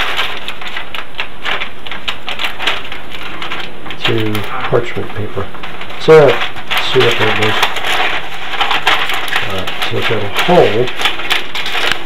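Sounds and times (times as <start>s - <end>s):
paper crackling and rustling: 0.0s - 12.0s.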